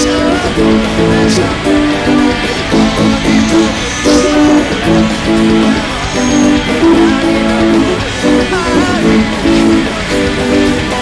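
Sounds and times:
electric guitar rhythm chords: 0:00.0 - 0:11.0
rock song recording: 0:00.0 - 0:11.0.

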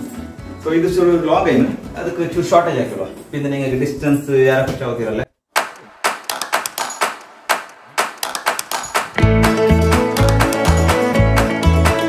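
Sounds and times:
background music: 0:00.0 - 0:03.4, 0:05.6 - 0:12.0
sharp claps or taps: 0:05.6 - 0:09.3.

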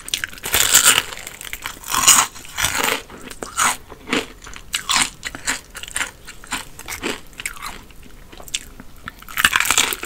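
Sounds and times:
chewing crispy fried chicken: 0:00.0 - 0:10.0
loud crunch of a bite: 0:00.1 - 0:10.0.

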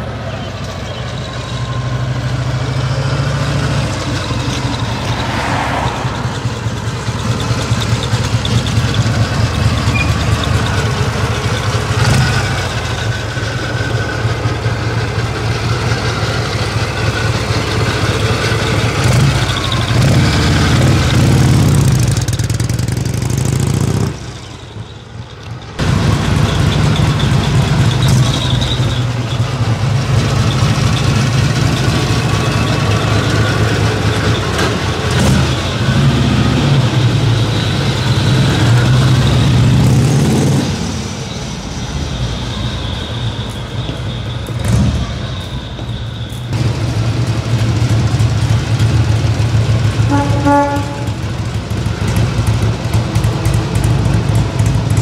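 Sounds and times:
motorcycle engine running: 0:06.2 - 0:24.2, 0:46.6 - 0:55.0.

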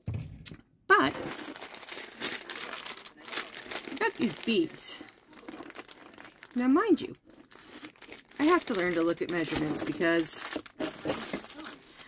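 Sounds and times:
plastic bag crinkling: 0:01.0 - 0:12.0.

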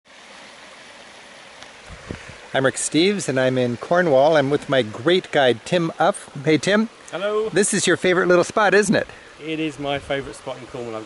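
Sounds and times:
stream running over stones: 0:00.1 - 0:11.0.

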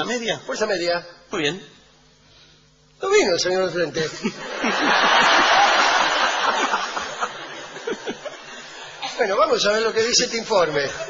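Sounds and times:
audience laughing: 0:04.1 - 0:09.0.

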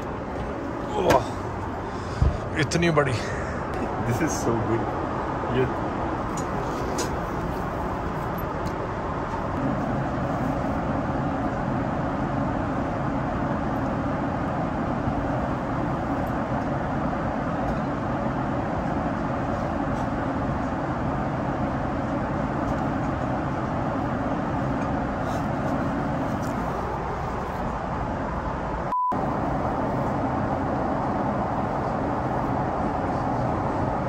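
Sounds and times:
airplane cabin noise: 0:00.0 - 0:34.0.

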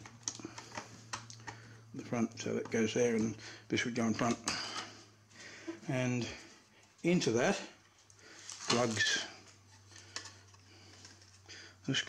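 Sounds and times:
man speaking: 0:02.0 - 0:04.6, 0:05.8 - 0:06.4, 0:07.0 - 0:07.8, 0:08.7 - 0:09.4
soft handling noise: 0:04.0 - 0:11.5.

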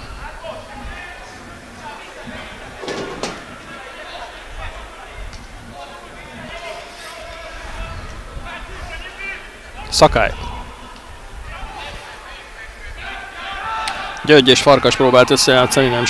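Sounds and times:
distant shouting voices: 0:05.9 - 0:16.0.

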